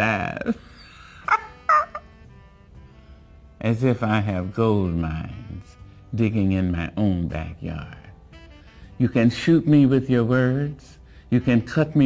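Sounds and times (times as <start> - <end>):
woman laughing: 0.4 - 2.2.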